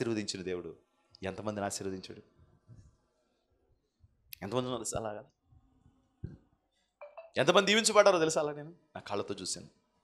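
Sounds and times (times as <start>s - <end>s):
man speaking: 4.4s - 5.3s, 7.2s - 9.7s.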